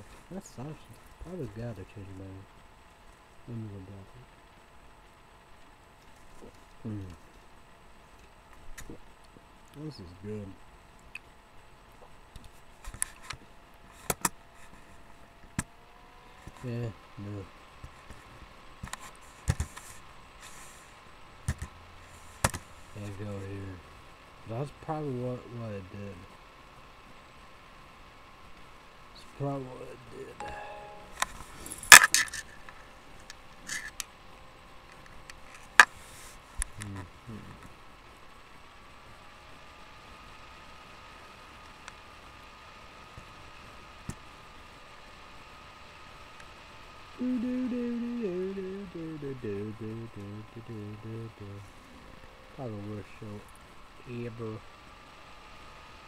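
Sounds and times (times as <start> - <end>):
brief low vocal sound: 47.2 - 51.6.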